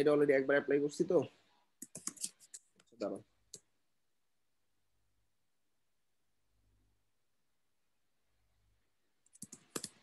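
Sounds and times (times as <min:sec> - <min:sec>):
computer keyboard typing: 0:01.8 - 0:02.9, 0:09.2 - 0:10.0.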